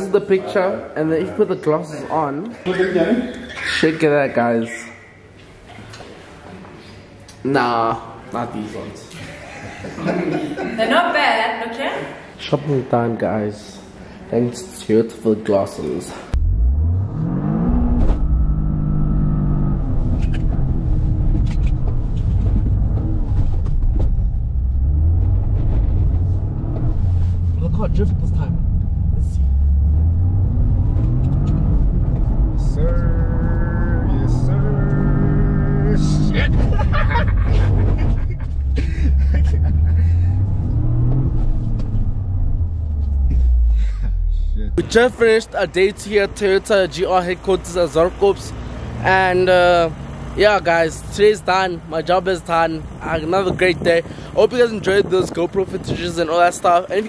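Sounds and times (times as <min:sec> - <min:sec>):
car engine accelerating: 0:16.3 - 0:45.1
low road rumble: 0:16.3 - 0:57.0.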